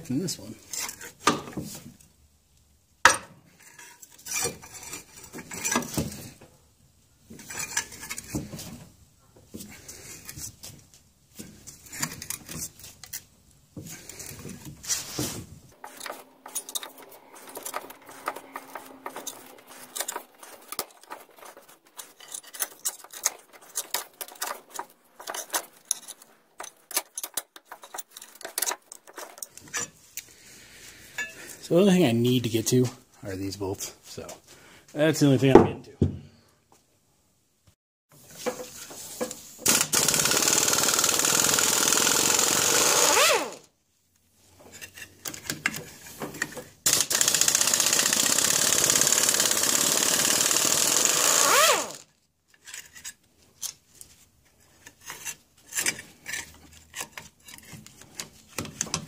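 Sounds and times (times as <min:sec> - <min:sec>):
metal tools clinking and scraping: 0:00.4 - 0:01.8, 0:03.5 - 0:06.4, 0:07.3 - 0:08.8, 0:11.4 - 0:31.6, 0:44.5 - 0:46.8, 0:52.5 - 0:59.0.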